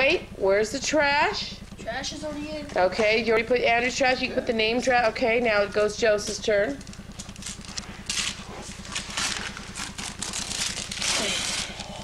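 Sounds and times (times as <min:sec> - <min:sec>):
low hum: 0:00.0 - 0:12.0
wrapping paper tearing and crumpling: 0:07.4 - 0:12.0.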